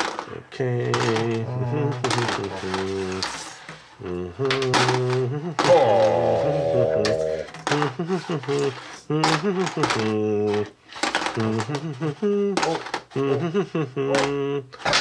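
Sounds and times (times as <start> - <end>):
wordless vocal sounds and hums: 0.3 - 14.8.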